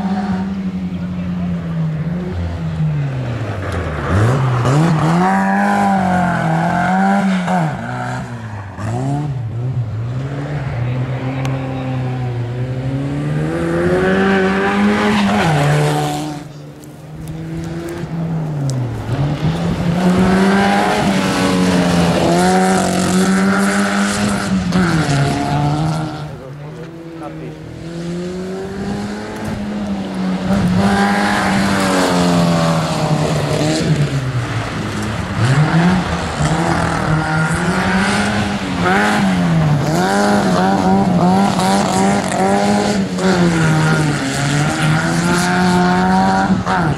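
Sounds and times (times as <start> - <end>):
rally car engine revving: 0.0 - 46.9.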